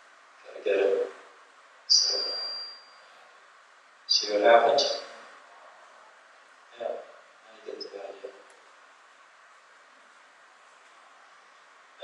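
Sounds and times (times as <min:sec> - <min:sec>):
high-pitched ring: 0:01.9 - 0:03.2, 0:04.1 - 0:05.2.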